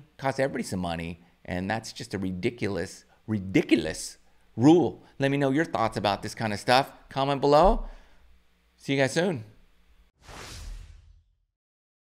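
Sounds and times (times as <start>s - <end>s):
whoosh sound effect: 10.2s - 11.3s.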